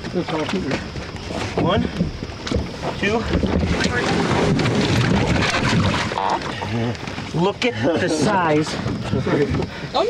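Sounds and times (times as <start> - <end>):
scuffling and knocking in boat: 0.0 - 10.0
wind on microphone: 0.9 - 7.3.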